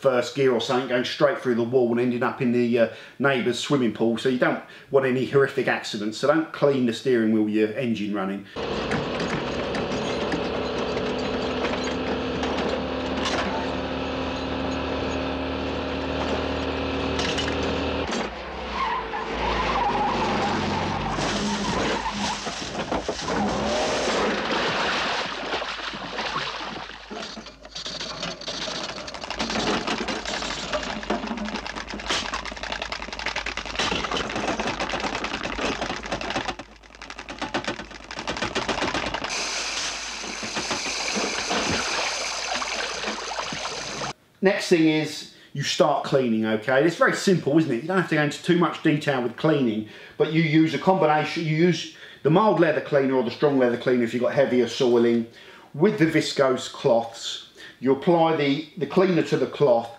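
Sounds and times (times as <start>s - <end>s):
small car engine running: 8.6s - 18.3s
car crashing and splashing into water: 21.1s - 27.6s, 39.2s - 44.2s
water pouring off car: 21.4s - 27.2s, 38.8s - 44.2s.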